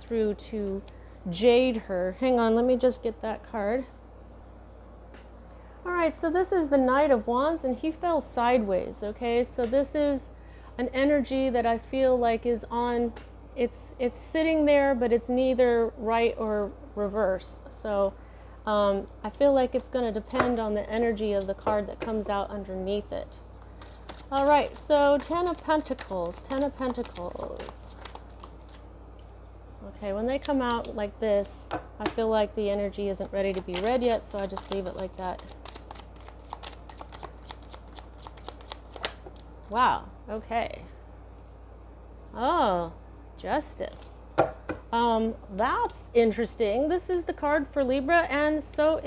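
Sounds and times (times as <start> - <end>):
steady low hum: 0.0 - 49.0.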